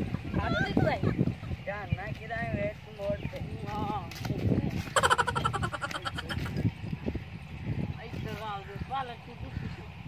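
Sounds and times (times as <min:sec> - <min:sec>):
men talking: 0:01.5 - 0:06.8.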